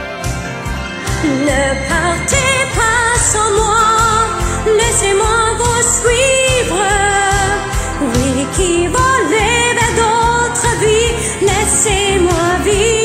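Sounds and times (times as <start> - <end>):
pop backing track: 0.0 - 13.0
person singing: 1.1 - 13.0.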